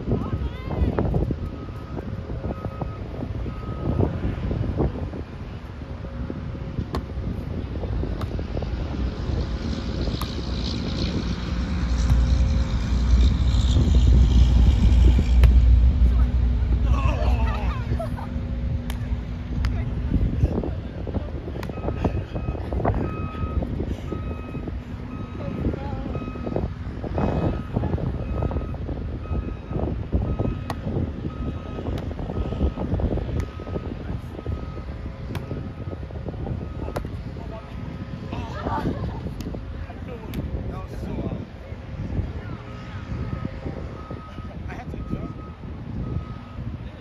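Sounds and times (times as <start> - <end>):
wind buffeting microphone: 0.0 - 47.0
vehicle reversing beeper: 1.4 - 4.4, 21.7 - 37.0, 42.4 - 47.0.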